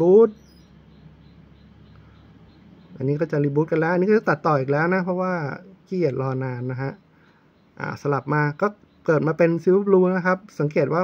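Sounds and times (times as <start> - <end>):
man's voice: 0.0 - 0.4, 3.0 - 7.0, 7.8 - 11.0
faint background hum and hiss: 0.0 - 11.0.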